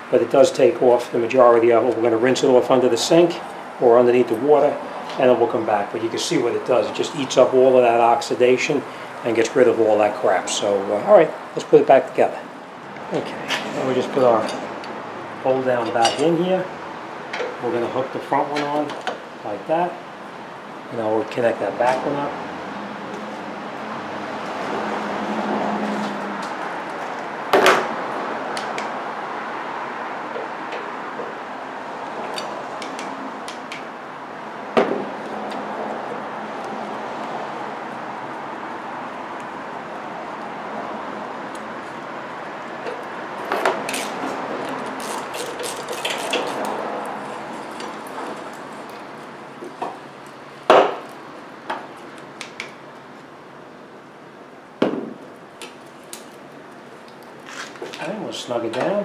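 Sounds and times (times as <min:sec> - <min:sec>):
steady background noise: 0:00.0 - 0:59.0.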